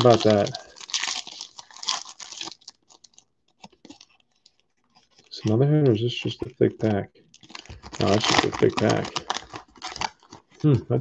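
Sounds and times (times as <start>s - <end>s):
foil wrapper crinkling: 0.0s - 5.4s, 7.2s - 10.8s.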